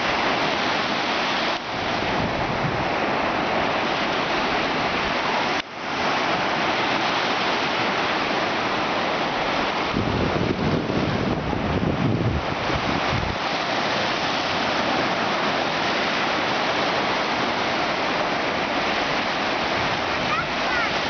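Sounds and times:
surf washing up a beach: 0.0 - 21.0
wind buffeting microphone: 1.7 - 5.4, 8.4 - 21.0.

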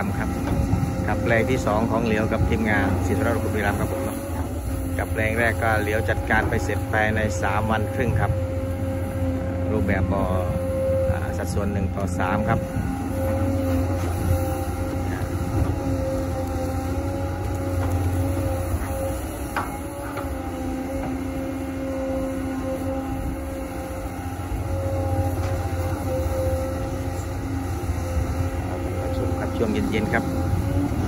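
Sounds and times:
excavator engine and hydraulics drone: 0.0 - 31.0.

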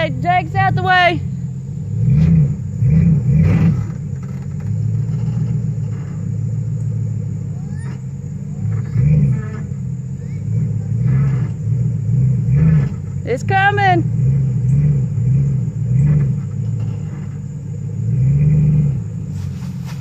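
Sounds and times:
pickup truck engine revving under load: 0.0 - 20.0.

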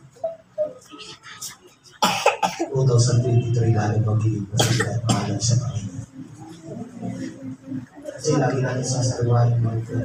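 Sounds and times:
loud cough: 2.0 - 2.8, 4.6 - 5.5
man talking: 2.6 - 6.1, 8.1 - 10.0.

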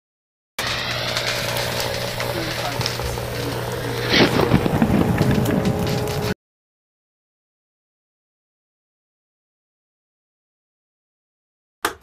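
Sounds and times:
burst of noise: 0.6 - 6.4
crackles and clicks: 0.6 - 6.4
steady low hum: 0.6 - 6.4.

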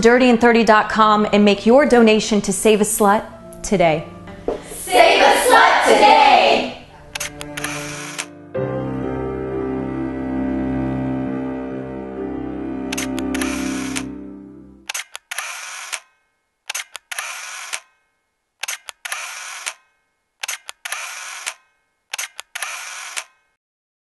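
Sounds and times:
background music: 0.0 - 15.0
camera shutter clicks and whir: 7.1 - 8.3, 12.9 - 14.1, 14.9 - 18.0, 18.6 - 23.6.

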